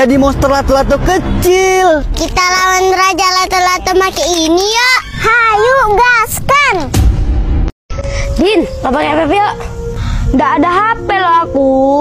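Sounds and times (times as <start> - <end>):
low rumbling boom: 0.0 - 3.3, 6.8 - 7.7.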